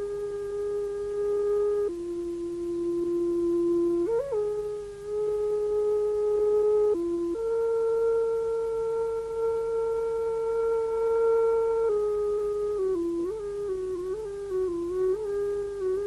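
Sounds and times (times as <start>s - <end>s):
slow melody on one instrument: 0.0s - 16.0s.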